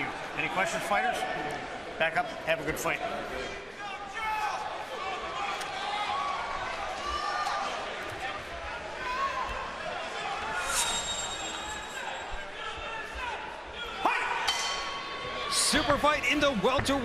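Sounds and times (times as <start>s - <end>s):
crowd chattering and calling out: 0.0s - 17.0s.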